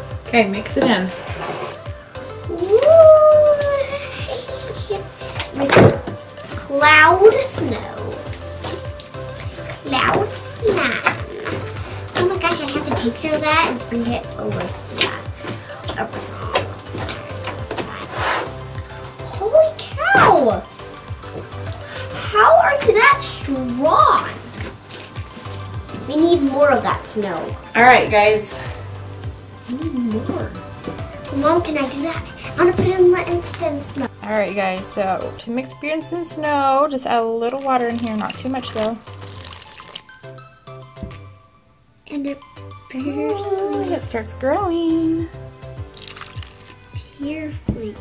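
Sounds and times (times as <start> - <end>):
background music with steady beat: 0.0 - 48.0
slime squishing by hand: 5.2 - 26.1, 45.9 - 46.9
water pouring into plastic tub: 37.4 - 40.2, 45.9 - 46.9.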